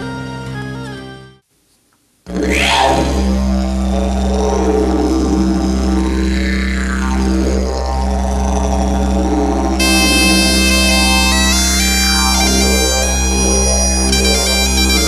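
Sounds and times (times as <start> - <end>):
didgeridoo low drone: 2.3 - 15.0
high-pitched wind instrument: 8.7 - 15.0.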